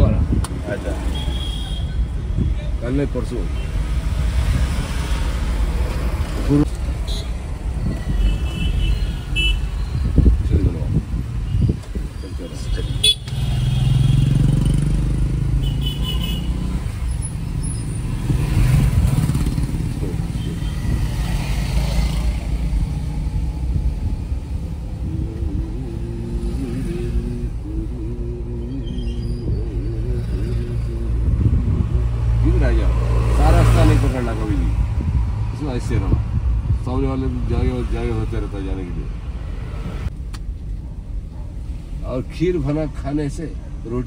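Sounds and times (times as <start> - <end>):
car engine and road noise: 0.0 - 44.0.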